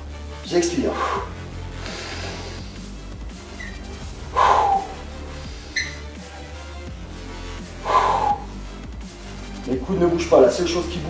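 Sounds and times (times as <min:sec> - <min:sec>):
background music with low beat: 0:00.0 - 0:11.0
man breathing out hard: 0:00.9 - 0:03.1, 0:04.2 - 0:05.8, 0:07.7 - 0:08.6.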